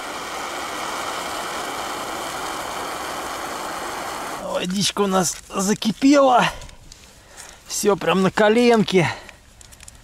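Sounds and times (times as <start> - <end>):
gas burner hissing: 0.0 - 4.6.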